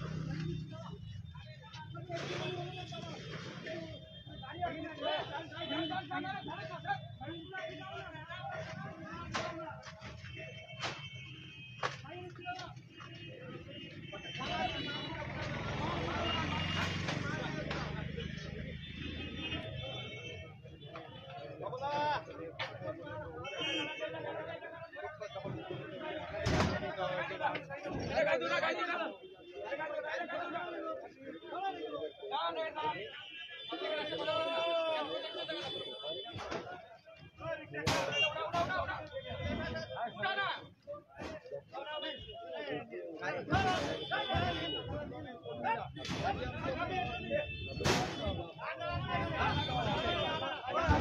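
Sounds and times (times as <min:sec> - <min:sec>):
men's voices in crowd: 0:00.0 - 0:51.0.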